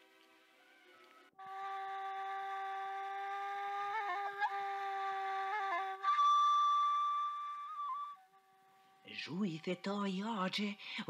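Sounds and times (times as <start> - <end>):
solo flute playing: 0.8 - 9.4.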